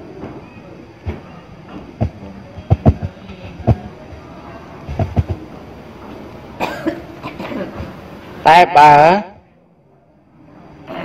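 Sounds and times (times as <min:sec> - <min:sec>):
person coughing: 0:06.6 - 0:07.8.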